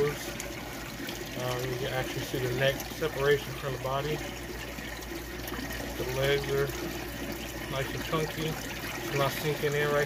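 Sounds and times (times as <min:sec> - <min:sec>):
trickling water: 0:00.0 - 0:10.0.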